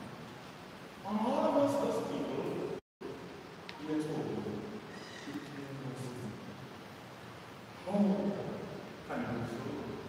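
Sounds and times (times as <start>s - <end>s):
man speaking into a microphone: 1.0s - 2.8s, 3.8s - 6.6s, 7.8s - 10.0s.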